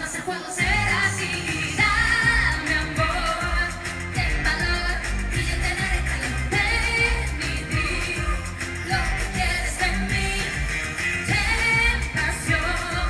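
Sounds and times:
pop band with driving beat: 0.0 - 13.0
woman singing: 0.0 - 13.0.

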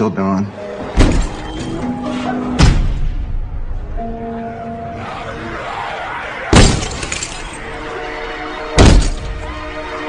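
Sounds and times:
faint trailer music: 0.0 - 10.0
loud crash: 6.5 - 7.6.

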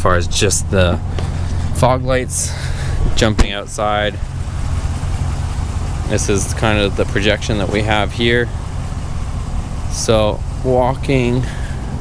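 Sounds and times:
pickup engine idling: 0.0 - 12.0.

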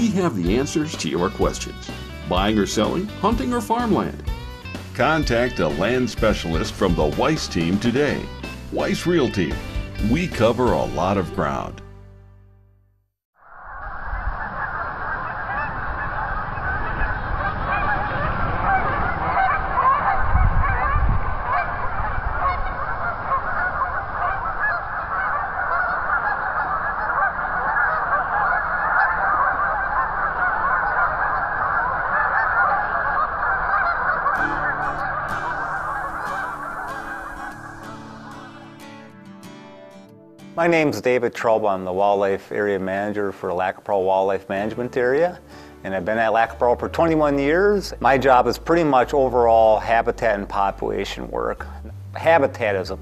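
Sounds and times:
geese honking: 0.0 - 11.7, 13.7 - 40.0
guitar music: 0.0 - 12.7, 34.3 - 41.6.

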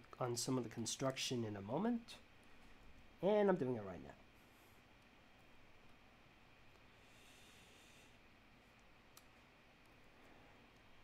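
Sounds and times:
faint hiss: 6.8 - 11.0.

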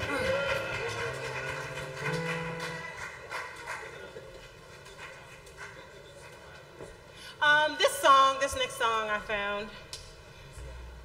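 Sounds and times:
stage noise: 0.0 - 9.2.

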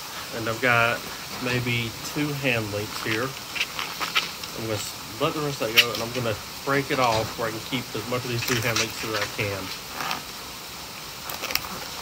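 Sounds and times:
latex balloon rubbing: 0.9 - 6.4.

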